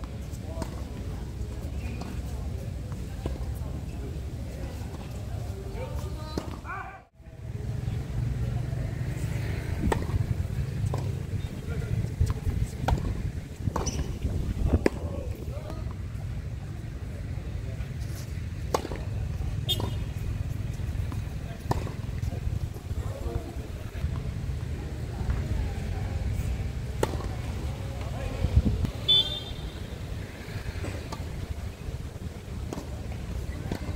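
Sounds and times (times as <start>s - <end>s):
tennis balls struck by racquets: 0.0s - 1.0s, 9.6s - 16.3s, 18.6s - 24.3s, 26.8s - 28.2s, 30.1s - 33.9s
voices of players and onlookers: 0.0s - 33.9s.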